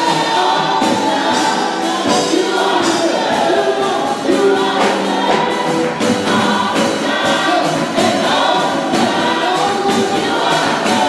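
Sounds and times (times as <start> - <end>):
band accompaniment with steady beat: 0.0 - 11.0
gospel choir singing: 0.0 - 11.0.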